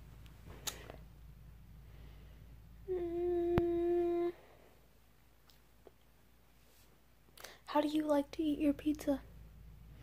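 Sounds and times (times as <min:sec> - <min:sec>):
woman humming: 0:02.8 - 0:04.5.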